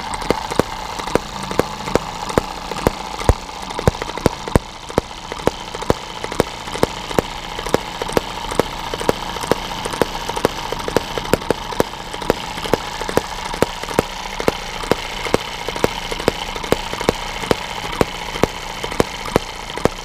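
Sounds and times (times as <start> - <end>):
mechanical whirr: 0.0 - 20.0
model engine firing pops: 0.0 - 20.0.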